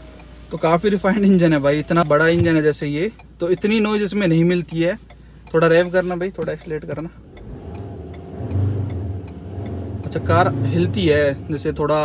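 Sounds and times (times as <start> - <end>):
diesel engine revving: 7.2 - 12.0.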